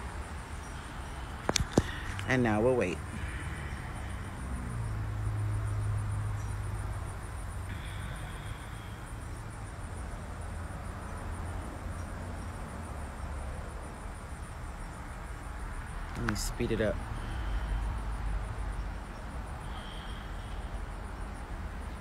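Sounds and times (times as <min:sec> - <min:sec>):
insects chirping: 0:00.0 - 0:22.0.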